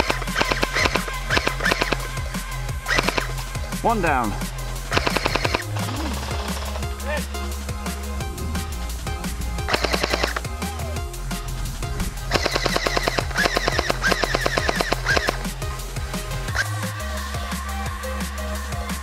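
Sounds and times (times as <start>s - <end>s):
electronic music with bass: 0.0s - 19.0s
airsoft rifle automatic fire: 4.9s - 5.6s, 9.7s - 10.4s, 12.3s - 15.4s.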